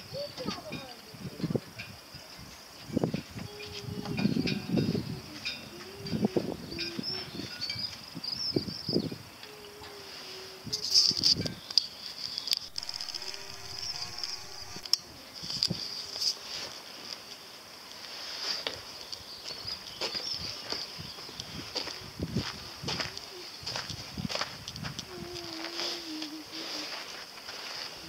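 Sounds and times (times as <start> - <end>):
low tone: 12.7 - 15.4.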